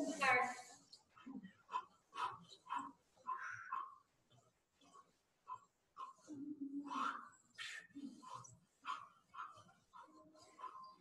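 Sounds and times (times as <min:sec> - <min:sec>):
people grunting and breathing hard: 0:01.1 - 0:04.1, 0:04.8 - 0:11.0.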